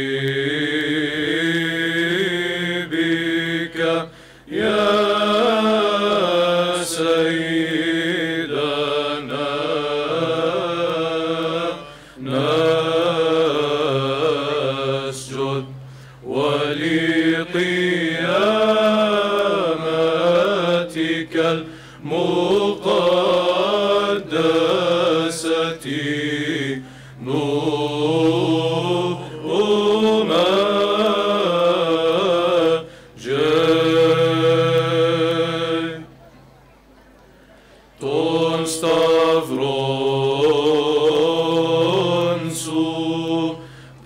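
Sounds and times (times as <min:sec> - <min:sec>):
mixed choir chanting: 0:00.0 - 0:36.3, 0:38.0 - 0:44.0
low held drone note: 0:26.0 - 0:31.9.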